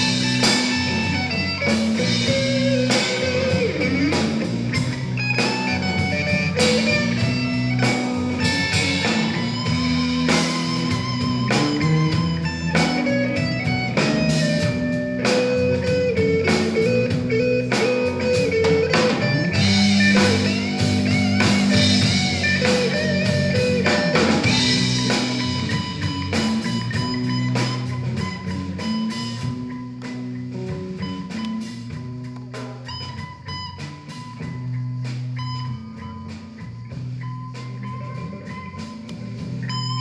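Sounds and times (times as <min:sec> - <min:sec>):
bass guitar: 0:00.0 - 0:40.0
drum kit: 0:00.0 - 0:40.0
electric guitars: 0:00.0 - 0:40.0.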